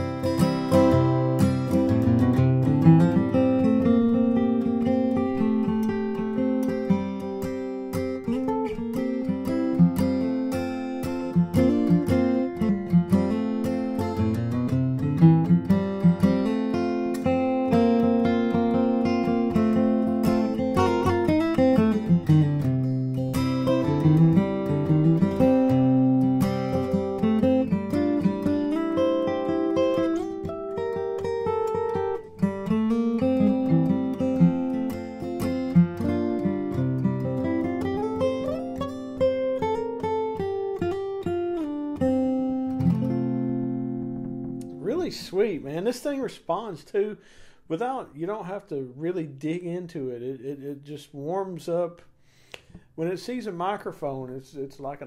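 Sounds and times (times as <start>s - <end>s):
acoustic guitar playing: 0.0s - 55.0s.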